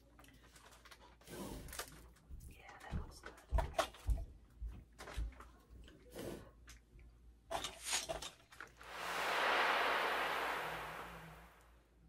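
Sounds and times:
whoosh of hissing noise: 0:08.8 - 0:11.8.

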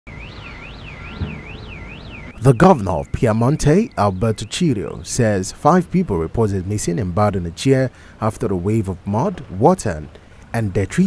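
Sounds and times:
electronic alarm wailing: 0:00.1 - 0:05.0.

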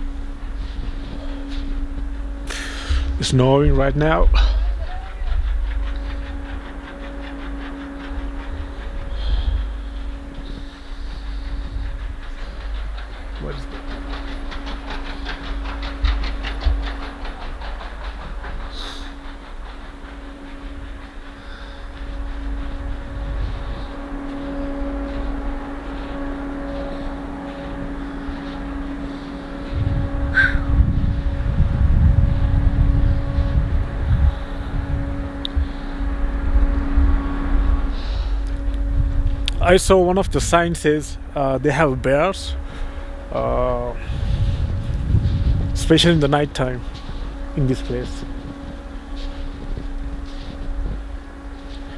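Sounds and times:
steady low hum: 0:00.0 - 0:51.9
wind rumbling on microphone: 0:00.0 - 0:51.9.

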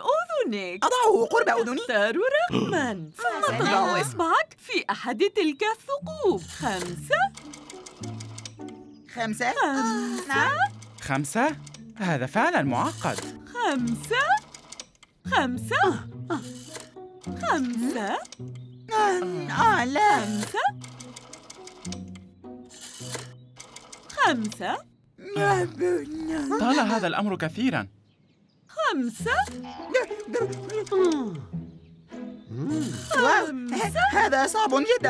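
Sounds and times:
soft background music: 0:00.0 - 0:35.0
rotary telephone dial clicking: 0:06.2 - 0:08.9, 0:09.6 - 0:11.9, 0:12.8 - 0:15.2, 0:16.4 - 0:18.7, 0:19.9 - 0:24.8, 0:29.2 - 0:31.2.

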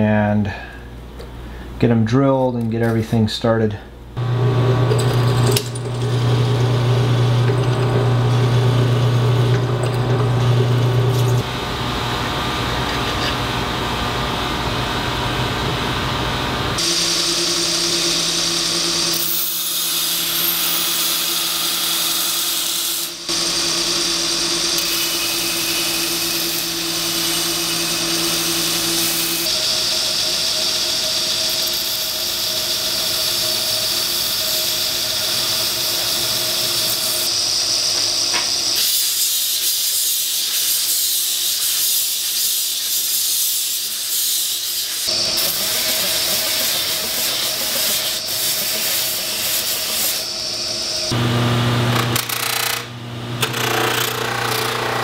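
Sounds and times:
belt grinder grinding: 0:04.2 - 0:11.5, 0:16.8 - 0:51.2, 0:51.8 - 0:55.0.

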